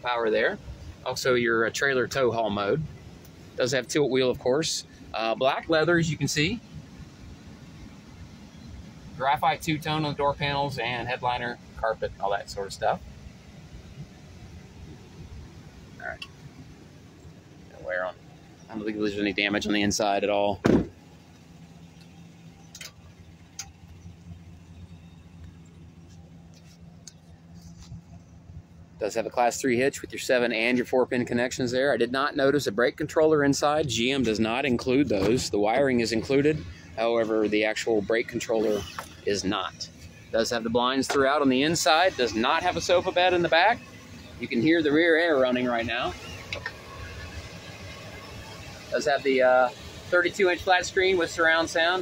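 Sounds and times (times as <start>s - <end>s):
engine idling: 0.0s - 52.0s
faint footsteps on pavement: 25.4s - 28.6s.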